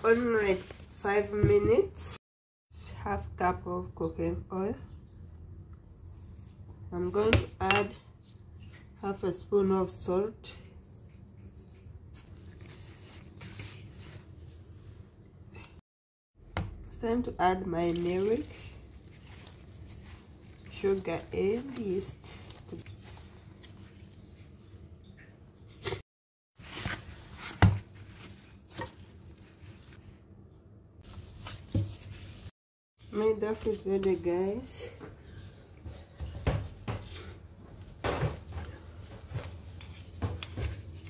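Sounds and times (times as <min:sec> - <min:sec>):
hand mixing flour in plastic bowl: 0:00.0 - 0:02.1, 0:06.0 - 0:15.2, 0:17.0 - 0:26.0, 0:31.0 - 0:34.9
dough thumping in plastic basin: 0:26.8 - 0:29.0.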